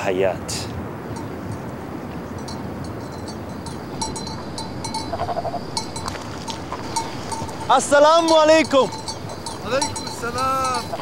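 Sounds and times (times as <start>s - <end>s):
steady outdoor hiss: 0.0s - 11.0s
small animal bell clinking: 1.2s - 11.0s.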